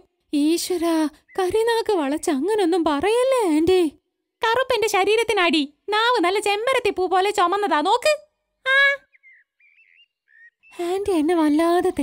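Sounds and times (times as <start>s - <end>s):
faint bird chirps: 0.4s - 3.6s, 8.6s - 12.0s.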